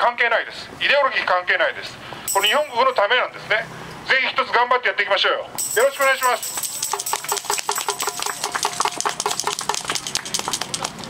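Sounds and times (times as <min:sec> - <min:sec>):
crowd applauding: 0:06.2 - 0:11.0.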